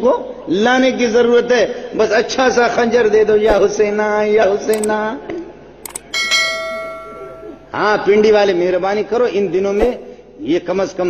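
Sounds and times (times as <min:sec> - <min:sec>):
mouse click: 0:05.9 - 0:06.1
bell ding: 0:06.1 - 0:07.7.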